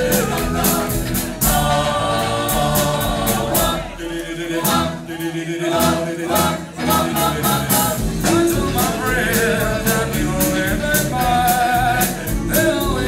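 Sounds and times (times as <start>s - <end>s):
drums: 0.0s - 13.0s
vocal group singing in harmony: 0.0s - 13.0s.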